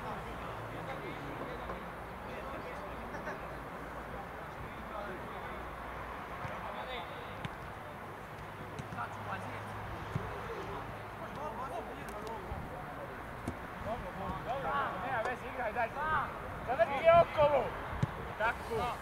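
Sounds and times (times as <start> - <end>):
background murmur: 0.0 - 19.0.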